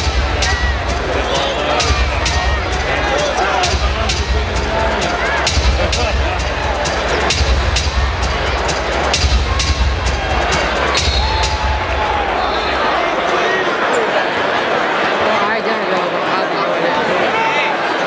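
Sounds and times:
music with heavy bass beat: 0.0s - 12.8s
crowd murmur: 0.0s - 18.0s.

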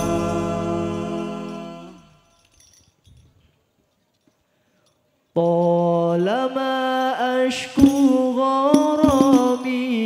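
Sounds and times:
man singing into a microphone: 0.0s - 2.0s, 5.4s - 10.0s.

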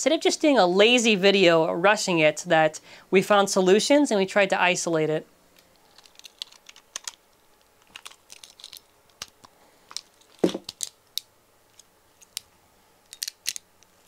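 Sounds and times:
plastic knock: 10.4s - 10.7s.

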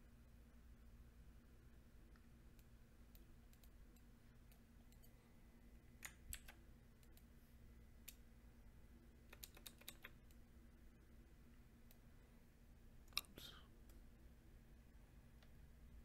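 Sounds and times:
low room hum: 0.0s - 16.0s
faint clicks: 2.1s - 5.2s, 6.0s - 7.3s, 9.3s - 10.4s.

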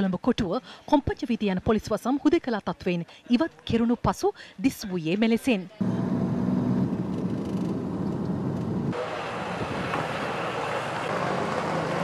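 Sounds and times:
car engine and road rumble: 5.8s - 12.0s
hissy outdoor street noise: 5.8s - 12.0s.

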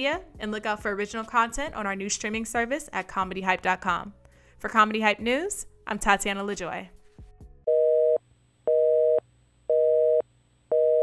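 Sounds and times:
telephone busy signal: 7.7s - 11.0s.

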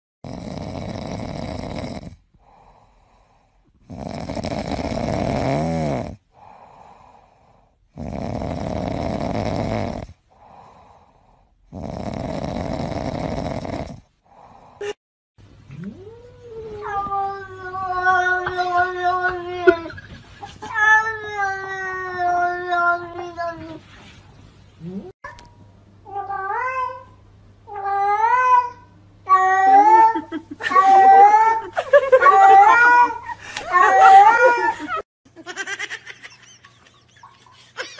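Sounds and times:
cat snoring: 0.2s - 2.7s, 3.8s - 6.6s, 7.9s - 10.9s, 11.7s - 14.6s
cat meowing: 27.7s - 34.8s.

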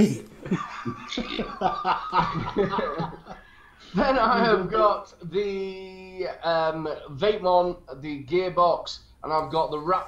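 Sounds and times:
men laughing: 0.4s - 4.9s.

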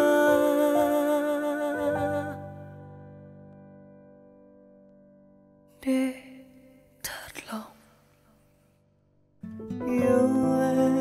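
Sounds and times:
breathy whispered vocal: 5.8s - 8.2s.

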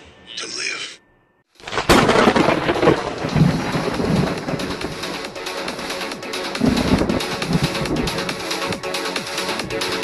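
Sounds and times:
thunder crack: 1.6s - 8.9s
thunder rumbling: 1.7s - 10.0s
music with deep thumps: 2.7s - 10.0s.

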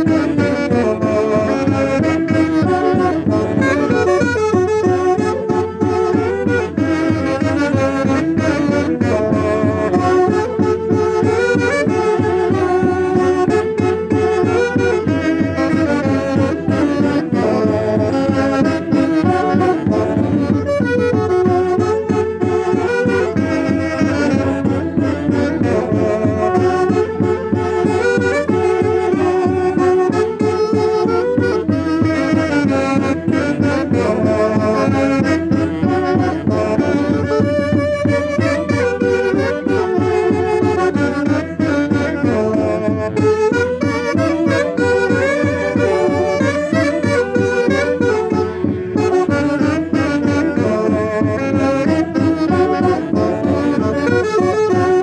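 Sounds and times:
saxophones playing festive dance tune: 0.0s - 55.0s.

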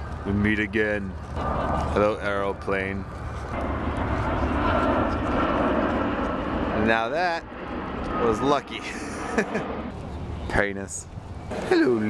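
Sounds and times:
airplane flying low overhead: 0.0s - 12.0s
faint high engine whine: 0.0s - 12.0s.

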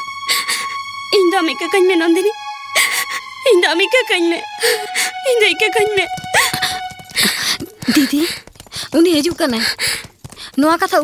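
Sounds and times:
held note of background music: 0.0s - 7.8s
woman sobbing: 2.7s - 3.4s, 6.2s - 8.4s
woman wailing: 6.2s - 7.4s.

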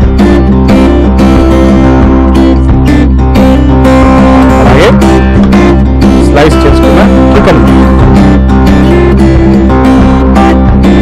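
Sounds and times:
strummed guitar music with beat: 0.0s - 11.0s.

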